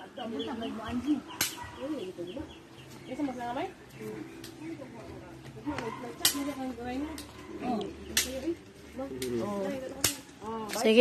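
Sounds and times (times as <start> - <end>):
chickens clucking: 0.1 - 3.2.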